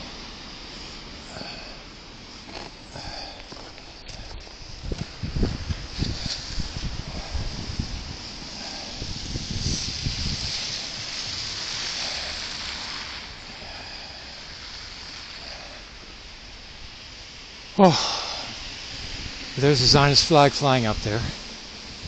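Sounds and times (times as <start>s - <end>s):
tyre hiss on wet street: 0.0s - 22.0s
wind rumble on microphone: 4.0s - 12.6s, 18.6s - 22.0s.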